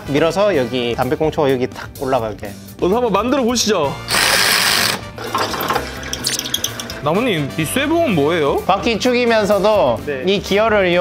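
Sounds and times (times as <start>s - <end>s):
drill press boring into metal: 4.1s - 7.3s.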